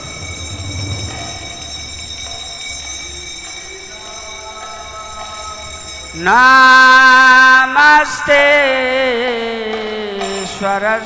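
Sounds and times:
low hall rumble: 0:00.0 - 0:02.0.

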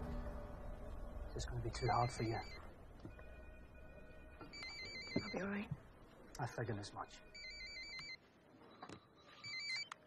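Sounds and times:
electronic telephone ringing: 0:01.8 - 0:05.5, 0:07.2 - 0:08.2, 0:09.3 - 0:10.0.

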